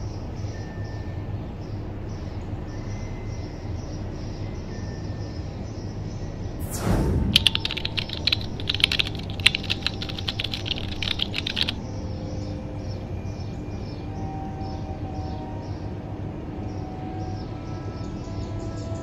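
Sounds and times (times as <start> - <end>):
faint steady background: 6.6 - 12.0
rapid sharp clicks: 6.7 - 11.8.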